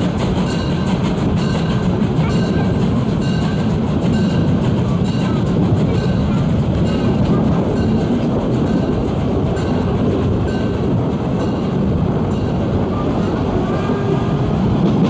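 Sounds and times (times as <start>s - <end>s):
train carriages rumbling on track: 0.0s - 15.0s
wind noise on microphone: 0.0s - 15.0s.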